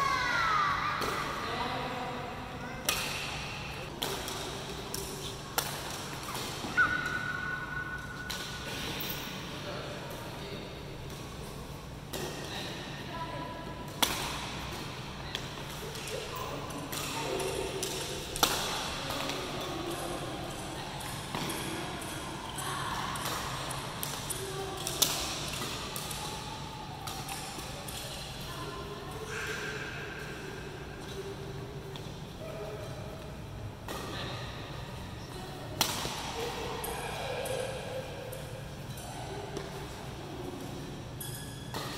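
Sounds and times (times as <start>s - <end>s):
racket strings hitting shuttlecocks: 2.8s - 9.1s, 13.9s - 28.2s, 35.8s - 36.4s.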